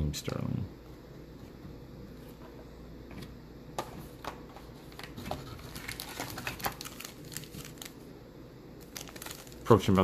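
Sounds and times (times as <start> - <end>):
foil wrapper crinkling: 4.9 - 8.1, 8.8 - 10.0.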